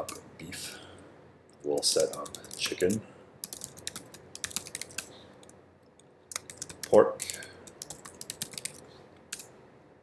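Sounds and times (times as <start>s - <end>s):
keyboard typing: 2.0s - 9.5s.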